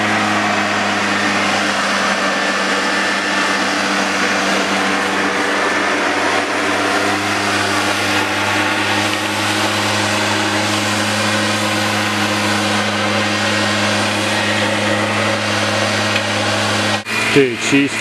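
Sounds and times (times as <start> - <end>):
rush of air: 0.0 - 17.4
leaf blower engine drone: 0.0 - 18.0.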